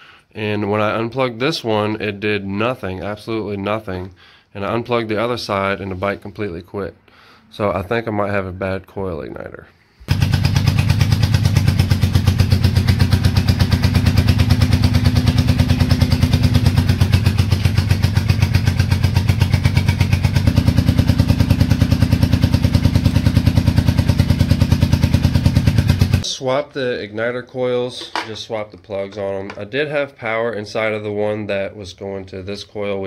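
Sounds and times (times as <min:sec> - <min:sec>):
motorcycle engine idling: 0:10.1 - 0:26.2.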